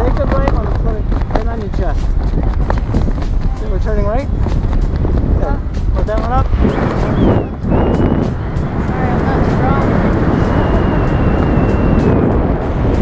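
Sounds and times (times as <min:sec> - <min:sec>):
wind buffeting microphone: 0:00.0 - 0:13.0
thin high whistle: 0:06.6 - 0:08.4, 0:10.4 - 0:12.2.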